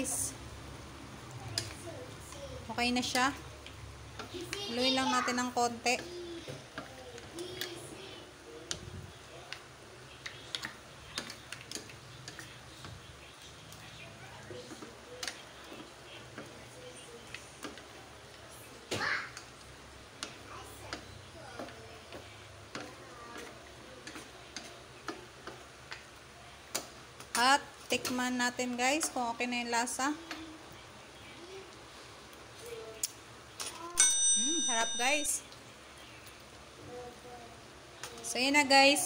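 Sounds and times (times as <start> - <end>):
wooden spatula stirring in a pan: 0.0 - 33.5
utensil clicking against pan: 10.2 - 12.9.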